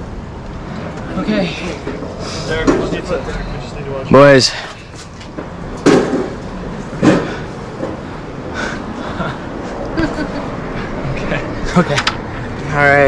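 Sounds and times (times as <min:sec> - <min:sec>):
street background noise: 0:00.0 - 0:13.0
sharp knocks: 0:05.4 - 0:06.4, 0:07.0 - 0:08.0.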